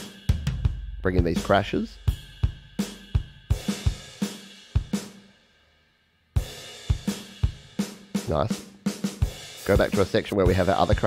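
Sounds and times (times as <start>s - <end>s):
drum kit beat: 0.0s - 5.3s, 6.4s - 11.0s.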